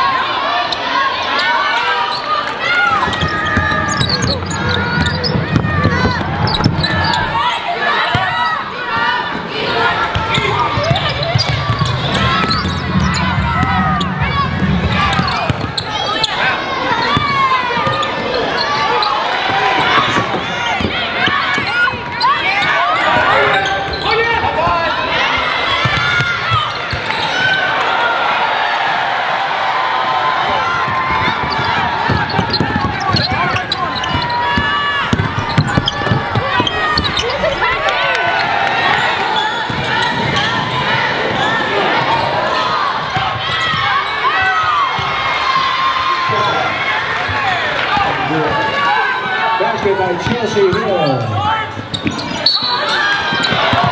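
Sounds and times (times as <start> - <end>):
indistinct voices: 0.0 - 27.8
sneakers squeaking: 0.6 - 27.7, 30.6 - 53.9
basketball dribbling: 3.0 - 7.3, 10.0 - 15.9, 31.0 - 37.8.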